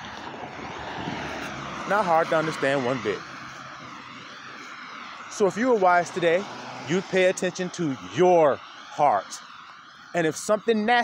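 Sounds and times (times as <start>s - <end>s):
steady rushing noise: 0.0s - 11.0s
man speaking: 1.8s - 3.3s, 5.3s - 9.4s, 10.2s - 11.0s.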